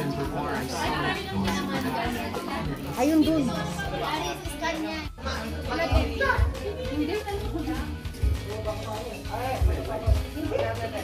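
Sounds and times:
music playing: 0.0s - 11.0s
party chatter: 0.0s - 11.0s.

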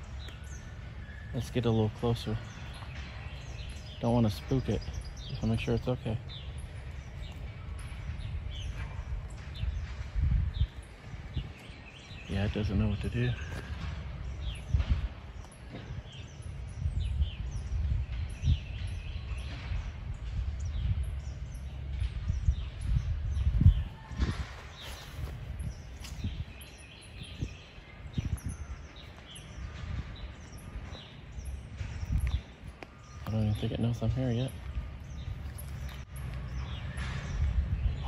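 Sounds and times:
low rumble of outdoor noise: 0.0s - 38.0s
small birds chirping: 0.0s - 38.0s.

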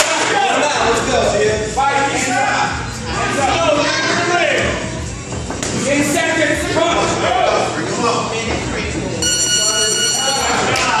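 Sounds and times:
music: 0.0s - 11.0s
voices: 5.9s - 11.0s
electronic buzzer tone: 9.2s - 10.7s.

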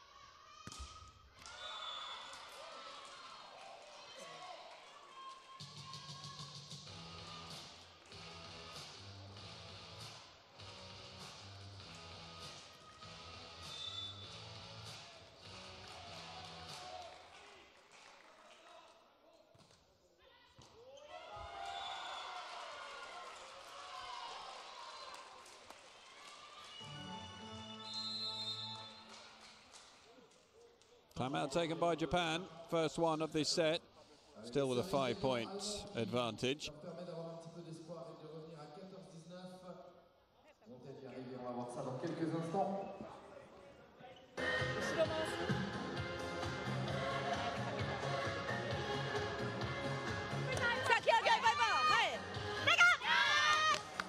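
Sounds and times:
players shouting: 50.5s - 53.7s.

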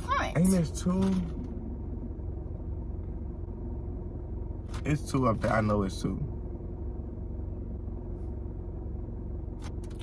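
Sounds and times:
car rumble inside cabin: 0.0s - 10.0s.

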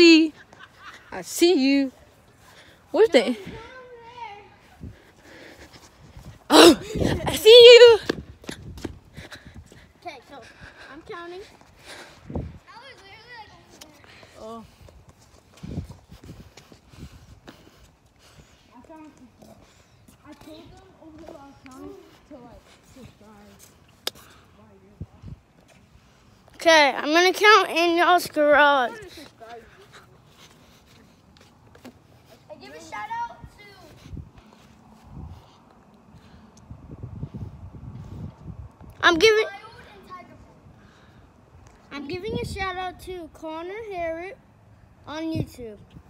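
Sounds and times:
footsteps: 0.0s - 36.3s.

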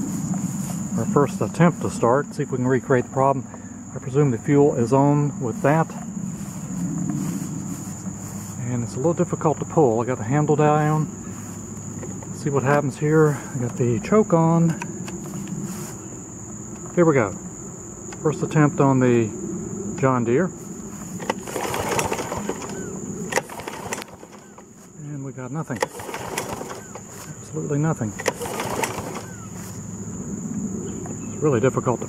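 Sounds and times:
high-pitched insect trill: 0.0s - 32.0s
rising bird chirp: 22.4s - 23.3s, 29.0s - 31.5s.

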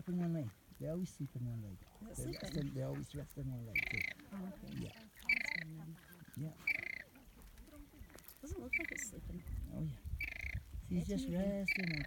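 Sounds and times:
flamingo calls: 2.2s - 2.9s, 3.6s - 9.5s, 10.2s - 10.6s, 11.6s - 12.0s.

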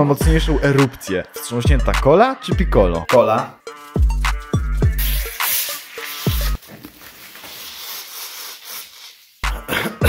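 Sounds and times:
gas hissing from bottle: 4.8s - 6.7s, 7.4s - 9.4s
soda fizzing: 5.0s - 9.4s.

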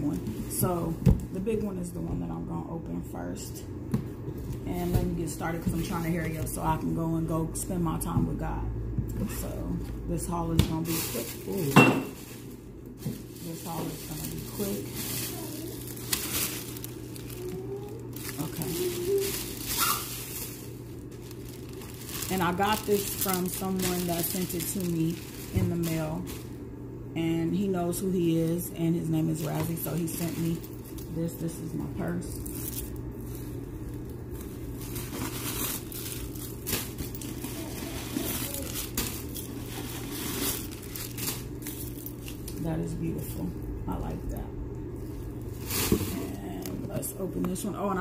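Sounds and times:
plastic packaging crinkling: 10.7s - 26.6s, 29.3s - 31.2s, 32.3s - 42.7s, 45.0s - 47.0s.

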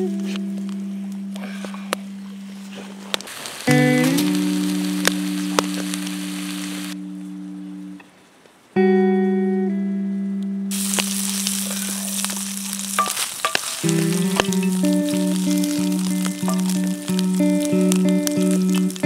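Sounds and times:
music of long held chords: 0.0s - 8.0s, 13.6s - 19.0s
bacon sizzling in a skillet: 3.3s - 7.0s, 10.7s - 19.0s.

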